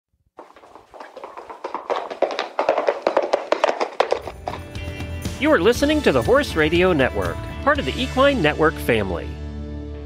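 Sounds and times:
horse hoofbeats galloping: 0.4 - 7.4.

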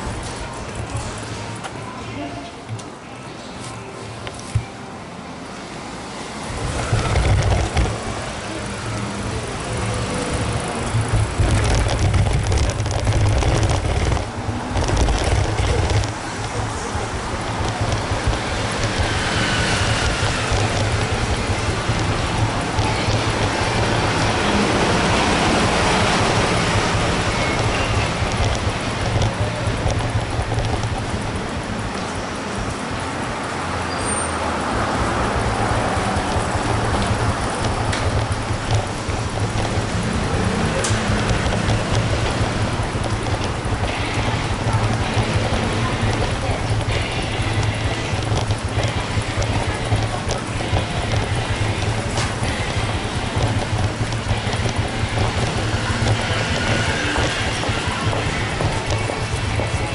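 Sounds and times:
city traffic hum: 0.0 - 59.9
faint music playing: 0.0 - 59.9.

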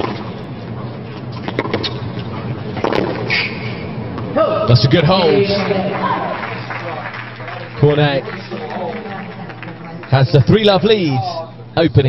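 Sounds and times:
tennis ball bounces: 1.4 - 2.0, 2.8 - 3.3.

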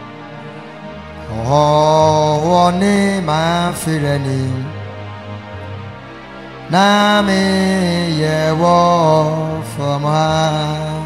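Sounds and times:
sustained backing chords: 0.0 - 11.0
man singing a long held note: 1.3 - 4.8, 6.7 - 11.0.

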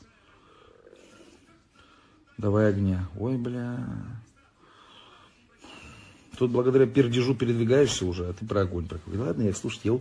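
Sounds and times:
man speaking: 2.2 - 10.0.

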